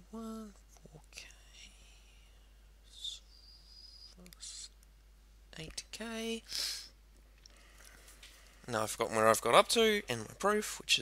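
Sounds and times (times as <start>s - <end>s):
man humming: 0.0s - 2.1s, 2.9s - 4.8s
man whispering and muttering: 0.0s - 4.8s
breaths: 6.5s - 8.7s.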